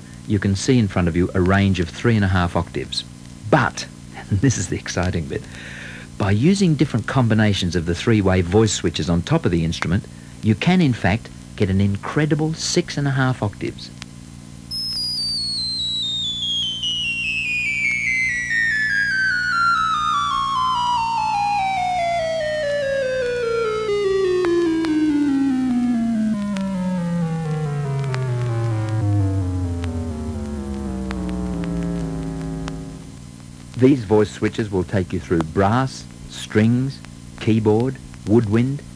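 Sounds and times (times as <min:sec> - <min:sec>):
stylophone descending run: 0:14.7 - 0:33.2.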